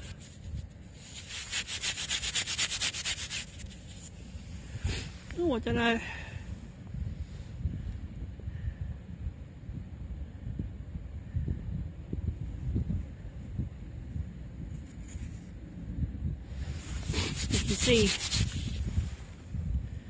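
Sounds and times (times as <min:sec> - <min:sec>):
coin rubbed by hand: 0:00.0 - 0:04.1, 0:14.8 - 0:15.5, 0:16.8 - 0:19.0
wind buffeting microphone: 0:03.5 - 0:20.0.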